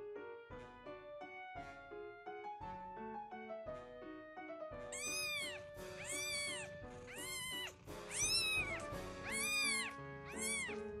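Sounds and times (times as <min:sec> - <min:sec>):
kitten mewing: 0:05.0 - 0:11.0.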